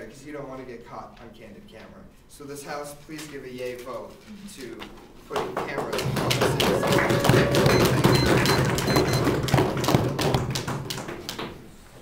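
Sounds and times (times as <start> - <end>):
knocking on desks applause: 5.3 - 11.6.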